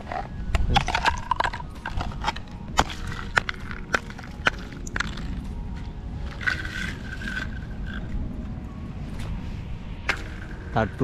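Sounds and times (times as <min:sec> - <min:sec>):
thin ice cracking and clinking: 0:00.0 - 0:08.2.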